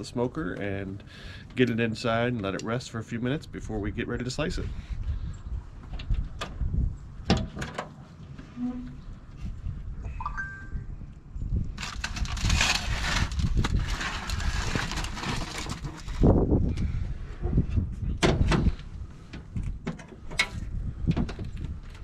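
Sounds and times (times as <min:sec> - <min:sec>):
foil-covered pan scraping and crinkling: 0:11.8 - 0:16.3.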